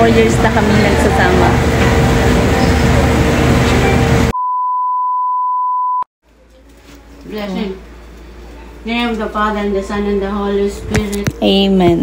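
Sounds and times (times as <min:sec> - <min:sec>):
store background hum: 0:00.0 - 0:04.5, 0:06.3 - 0:12.0.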